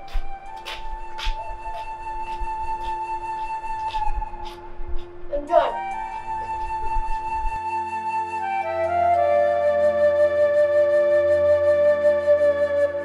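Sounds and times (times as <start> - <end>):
slow film score music: 0.0 - 13.0.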